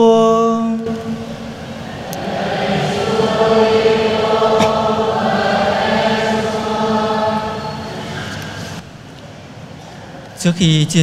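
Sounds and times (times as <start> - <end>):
choir and congregation chanting: 0.0 - 8.8.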